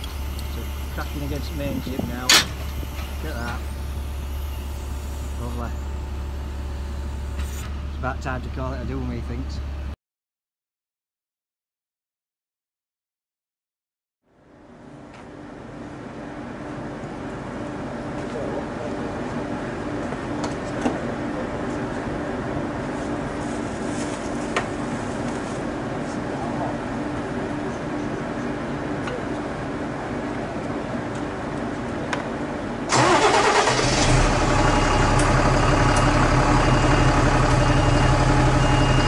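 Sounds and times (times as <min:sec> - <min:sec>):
truck engine idling: 0:00.0 - 0:09.9, 0:32.9 - 0:39.0
lorry engine idling: 0:32.9 - 0:39.0.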